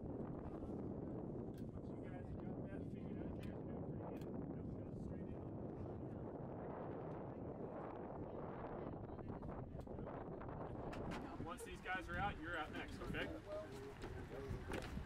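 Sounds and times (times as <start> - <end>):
muffled voices: 1.6 - 15.0.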